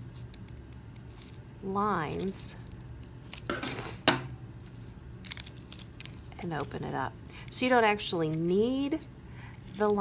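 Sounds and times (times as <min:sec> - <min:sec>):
paper crinkling: 0:00.0 - 0:04.0, 0:04.6 - 0:10.0.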